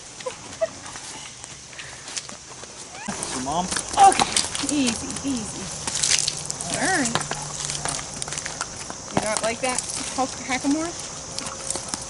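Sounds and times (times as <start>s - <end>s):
horse hooves on gravel: 0.0s - 12.0s.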